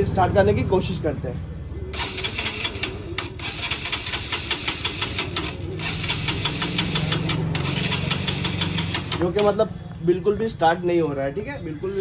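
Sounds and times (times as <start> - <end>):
motorcycle engine cranking on starter: 1.9 - 9.4.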